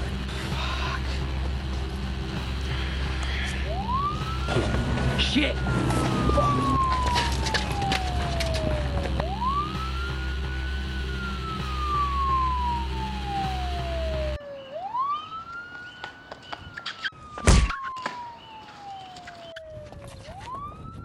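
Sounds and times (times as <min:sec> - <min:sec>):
siren wailing: 0:00.0 - 0:21.0.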